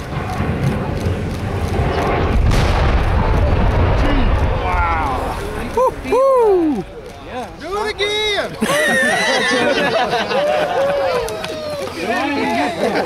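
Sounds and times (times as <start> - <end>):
sharp crack: 0.0 - 8.3.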